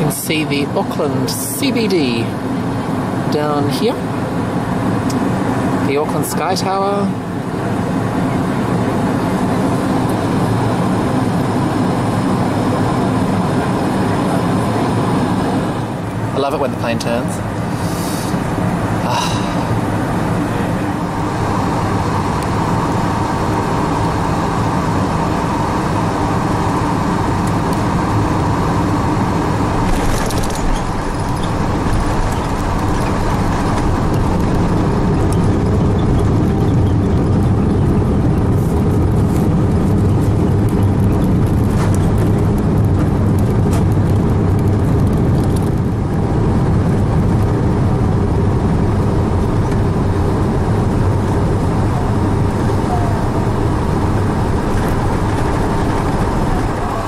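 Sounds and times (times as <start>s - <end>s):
aircraft engine hum: 0.0s - 57.0s
airflow rush in aircraft cabin: 0.0s - 57.0s.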